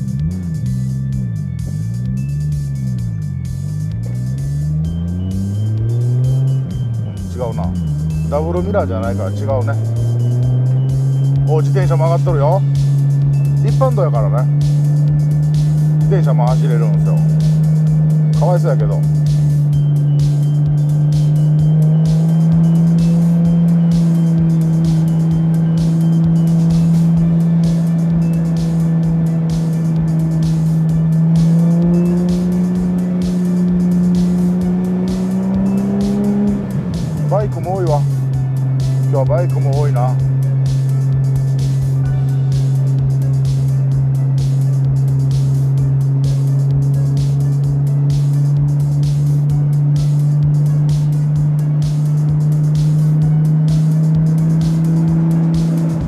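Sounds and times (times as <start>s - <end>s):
car engine droning in cabin: 0.0s - 56.0s.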